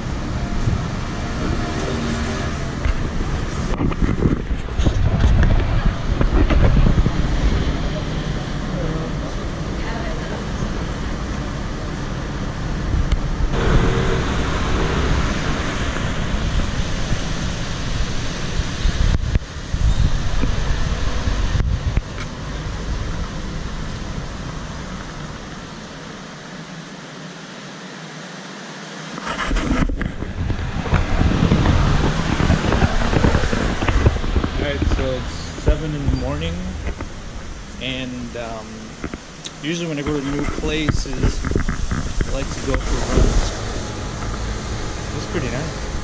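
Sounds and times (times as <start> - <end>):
wind on microphone: 0.0 - 8.6, 12.7 - 23.1, 29.2 - 37.8, 40.1 - 46.0
city street traffic: 0.0 - 46.0.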